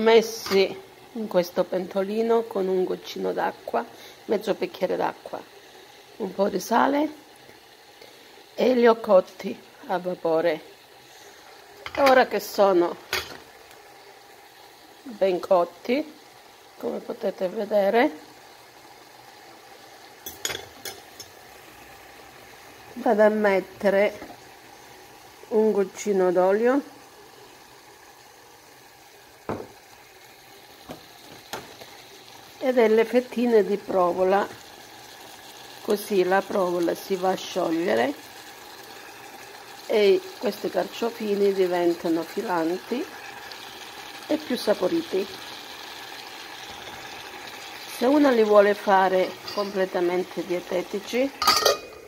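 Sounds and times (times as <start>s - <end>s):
faint steady hiss: 0.0s - 52.0s.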